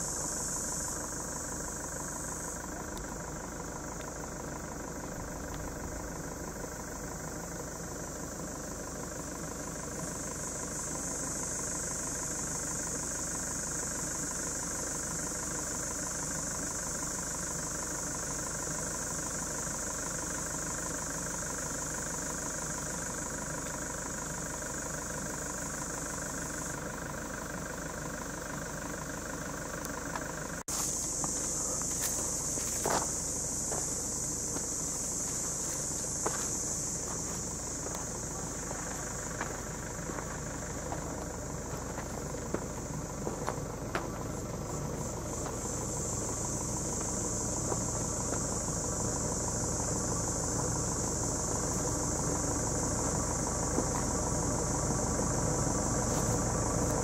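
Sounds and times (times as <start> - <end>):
cicadas buzzing: 0.0 - 57.0
engine humming: 0.0 - 57.0.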